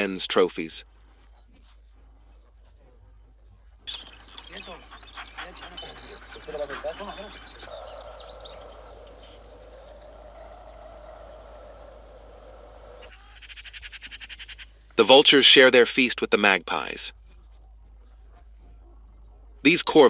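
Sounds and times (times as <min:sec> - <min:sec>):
bird chirps: 0:00.0 - 0:20.0
magpies rattling chatter: 0:00.0 - 0:20.0
animal whines or yelps: 0:03.9 - 0:13.4.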